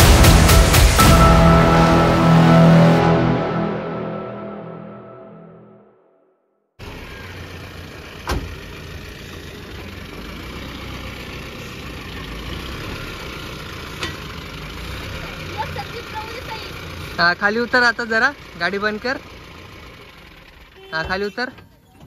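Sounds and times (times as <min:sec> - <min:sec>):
pickup engine idling: 0:06.8 - 0:22.0.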